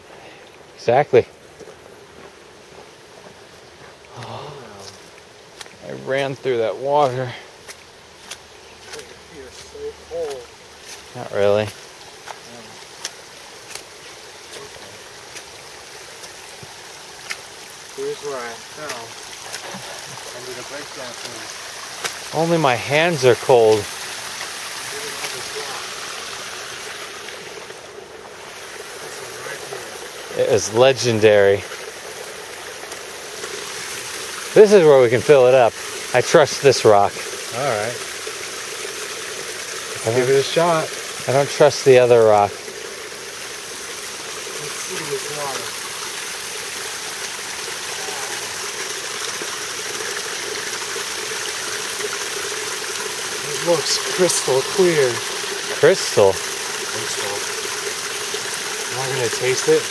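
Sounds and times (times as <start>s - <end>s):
stream running over rocks: 0.0s - 59.9s.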